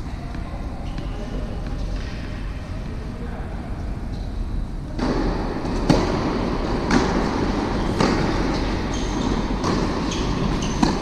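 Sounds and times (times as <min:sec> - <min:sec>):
sports hall low rumble: 0:00.0 - 0:11.0.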